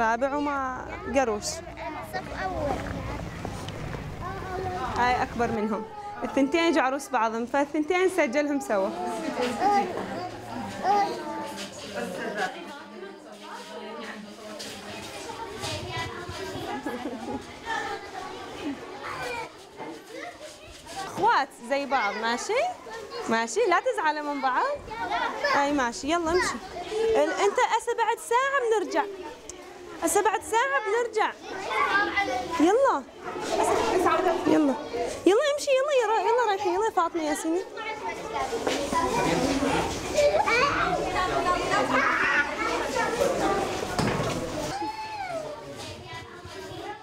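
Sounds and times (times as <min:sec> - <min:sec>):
children chattering and calling: 0:00.0 - 0:47.0.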